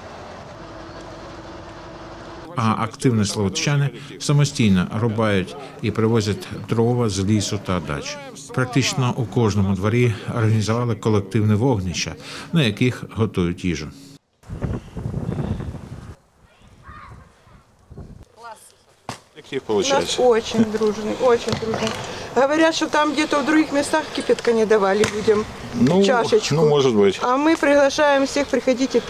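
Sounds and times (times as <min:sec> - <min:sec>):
hydraulic hum: 0:00.0 - 0:02.5
truck engine running: 0:00.0 - 0:02.9
wind buffeting microphone: 0:14.4 - 0:18.3.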